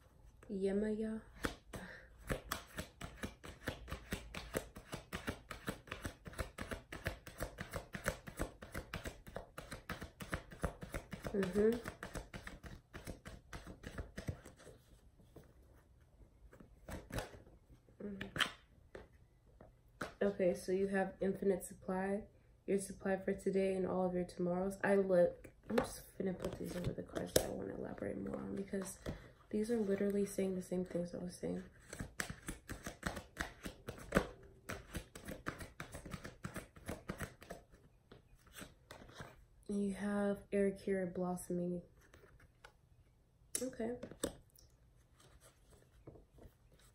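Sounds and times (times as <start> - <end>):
cards shuffling: 1.4 - 15.5, 16.5 - 17.5, 31.6 - 37.8.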